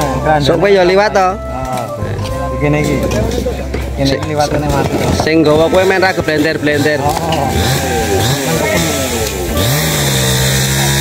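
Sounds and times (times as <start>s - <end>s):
engine pitch sliding up and down: 5.0s - 11.0s
small engine revving: 5.6s - 11.0s.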